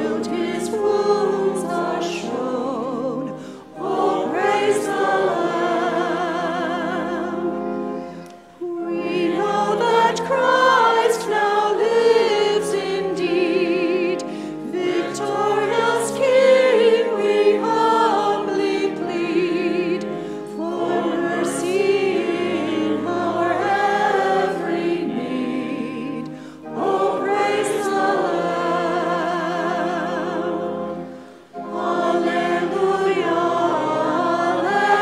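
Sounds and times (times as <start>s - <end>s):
church choir singing: 0.0s - 35.0s
held low accompanying notes: 0.0s - 35.0s.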